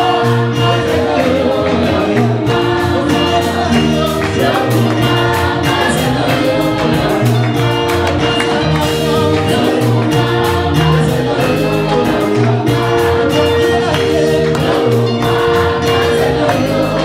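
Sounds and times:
congregation singing in chorus: 0.0 - 17.0
instrumental backing with beat: 0.0 - 17.0.

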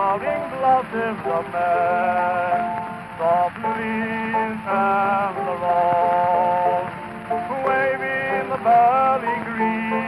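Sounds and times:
old gramophone song: 0.0 - 10.0
record surface hiss and crackle: 0.0 - 10.0.

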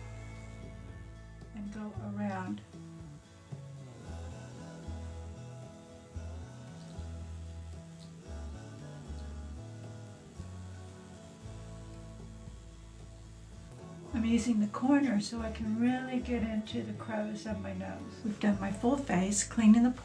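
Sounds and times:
quiet background music with bass line: 0.0 - 20.0.

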